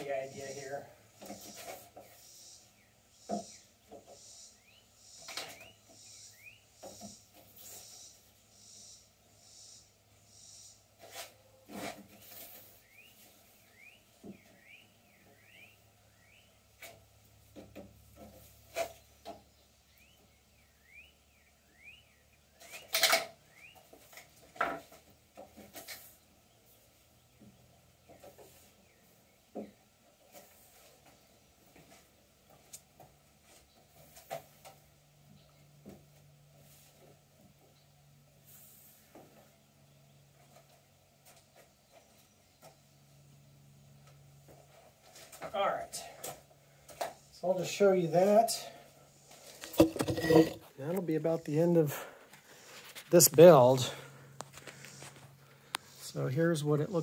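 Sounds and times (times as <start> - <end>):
rods sliding through wooden holes: 49.5 - 50.7.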